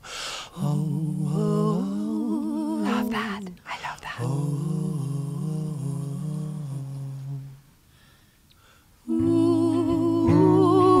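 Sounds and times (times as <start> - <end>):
two voices humming harmony: 4.2 - 7.6, 9.1 - 11.0.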